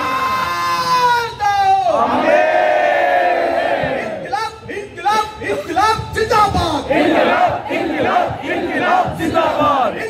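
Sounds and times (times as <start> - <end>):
man shouting into microphone: 0.0 - 2.3
crowd shouting: 0.0 - 4.3, 6.8 - 10.0.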